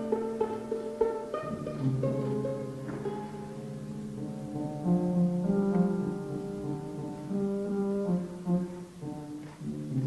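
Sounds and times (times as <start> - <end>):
violin and piano duo: 0.0 - 10.0.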